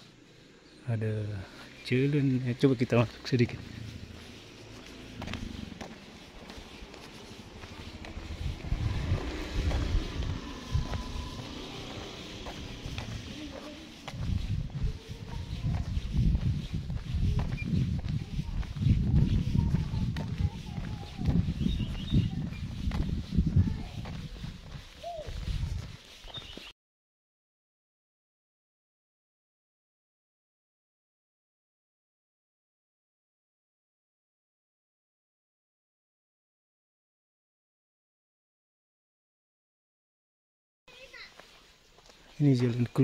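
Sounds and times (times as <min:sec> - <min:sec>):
faint distant voices: 0:03.4 - 0:25.6
wind buffeting microphone: 0:03.6 - 0:26.6.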